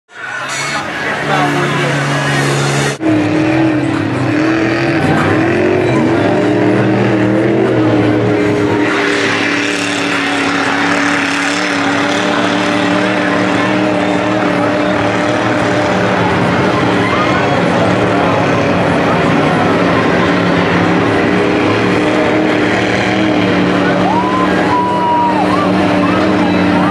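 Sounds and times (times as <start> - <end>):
truck engine revving: 0.1 - 26.9.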